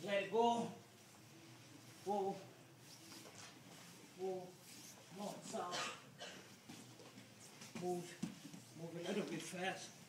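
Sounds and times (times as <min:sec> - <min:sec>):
man speaking: 0:00.0 - 0:00.8, 0:02.0 - 0:02.5, 0:04.2 - 0:06.0, 0:07.8 - 0:10.0.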